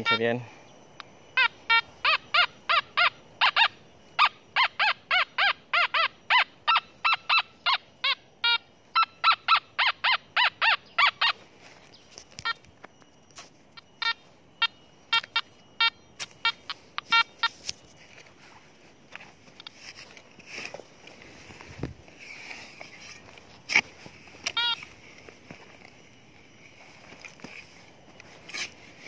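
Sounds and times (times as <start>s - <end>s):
metal detector beeps: 0.0s - 29.0s.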